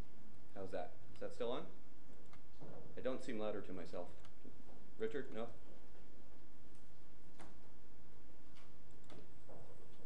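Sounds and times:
person speaking: 0:02.9 - 0:05.8.

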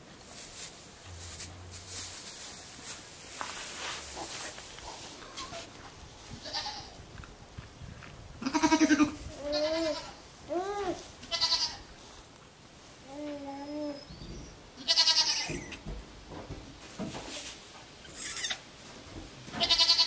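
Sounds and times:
goats bleating: 0:06.4 - 0:07.0, 0:08.4 - 0:10.2, 0:11.3 - 0:11.8, 0:14.8 - 0:15.7, 0:19.6 - 0:20.0.

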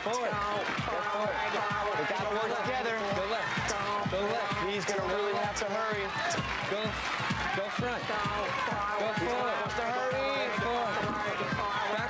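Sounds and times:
dull low thumps: 0:00.0 - 0:12.0
voices shouting over one another: 0:00.0 - 0:12.0.

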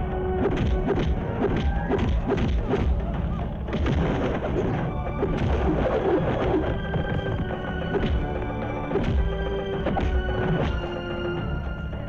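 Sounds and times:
driving background score: 0:00.0 - 0:12.0.

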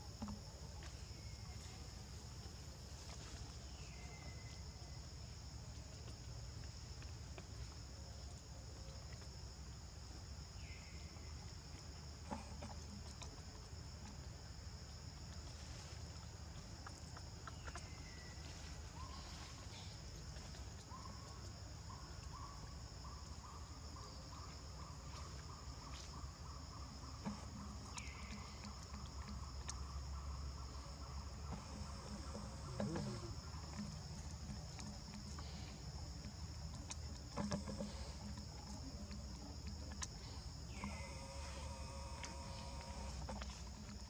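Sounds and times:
high-pitched insect chorus: 0:00.0 - 0:44.0
low pulsing chirping: 0:15.6 - 0:44.0
high-pitched insect drone: 0:40.4 - 0:44.0.

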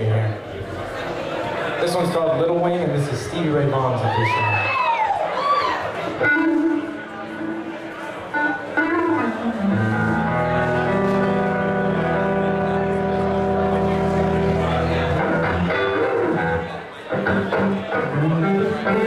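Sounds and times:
electric guitar chords and notes: 0:06.1 - 0:19.0.

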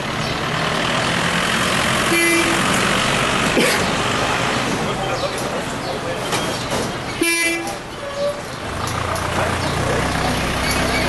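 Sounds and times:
street traffic: 0:00.0 - 0:11.0
vehicle horn toot: 0:02.1 - 0:02.6, 0:07.2 - 0:08.4.

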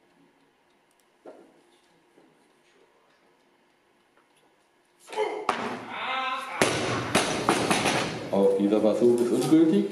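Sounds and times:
people shouting: 0:05.1 - 0:07.3.

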